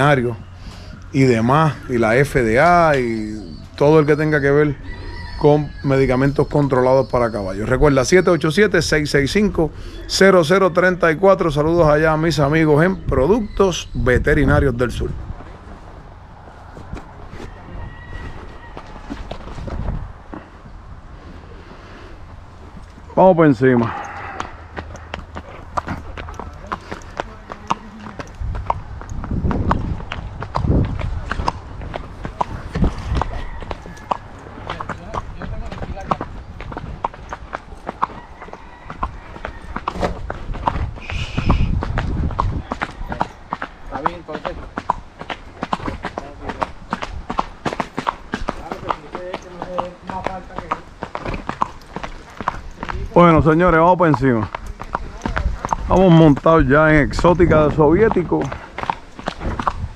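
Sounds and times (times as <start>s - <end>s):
hooves on asphalt: 0.0s - 59.9s.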